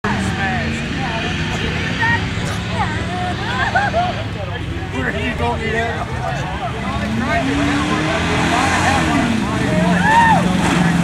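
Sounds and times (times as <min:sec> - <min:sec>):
people talking: 0:00.0 - 0:11.0
truck engine running steadily: 0:00.0 - 0:11.0.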